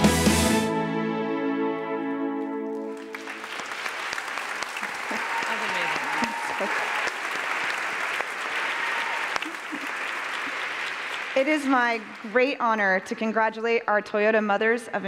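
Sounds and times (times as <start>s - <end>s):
audience applauding: 2.6s - 13.1s.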